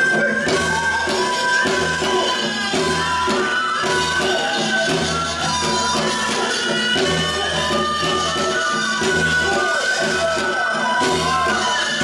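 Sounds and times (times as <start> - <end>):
held melodic notes: 0.0 - 12.0.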